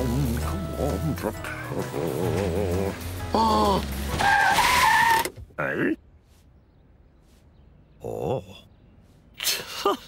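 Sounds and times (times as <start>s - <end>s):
cartoon tyres screeching: 2.3s - 5.5s.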